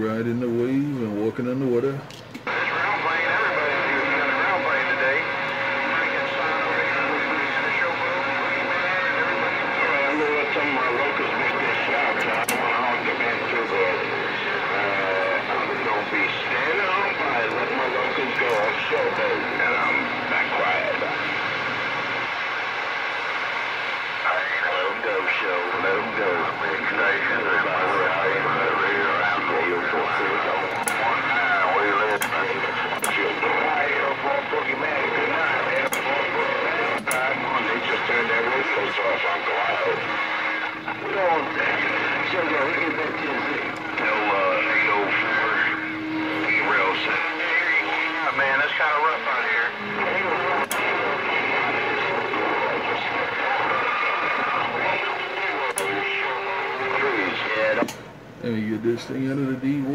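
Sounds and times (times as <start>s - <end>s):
distant voices over radio: 0.0s - 59.9s
radio static: 0.0s - 59.9s.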